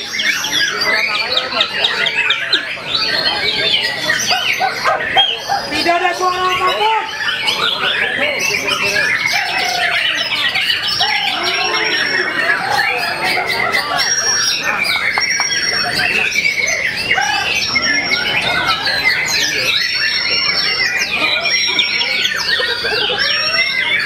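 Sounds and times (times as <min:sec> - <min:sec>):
songbirds whistling and trilling: 0:00.0 - 0:24.0.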